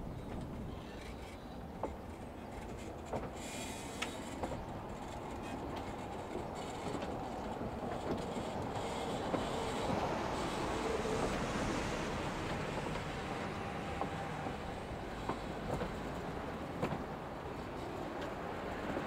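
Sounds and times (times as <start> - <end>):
train rumbling on rails: 0.0 - 19.0
train wheel clicks: 0.2 - 19.0.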